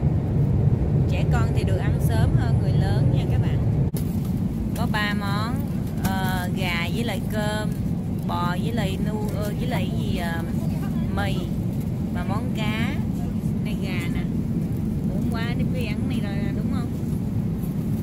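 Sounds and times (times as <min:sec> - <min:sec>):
airliner cabin rumble: 0:00.0 - 0:18.0
people talking: 0:01.1 - 0:03.6, 0:04.7 - 0:14.4, 0:15.0 - 0:17.0.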